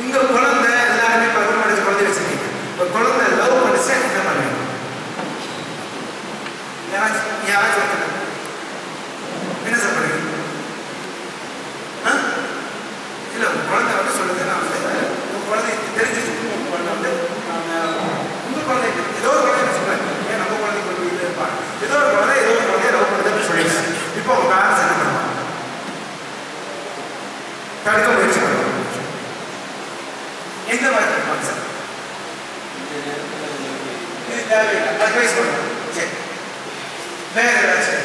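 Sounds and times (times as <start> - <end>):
man speaking into a microphone: 0.0 - 4.9, 6.9 - 8.4, 9.5 - 10.6, 12.0 - 12.7, 13.3 - 25.6, 27.8 - 29.2, 30.7 - 31.9, 32.8 - 36.4, 37.3 - 38.0
steady hiss: 0.0 - 38.0.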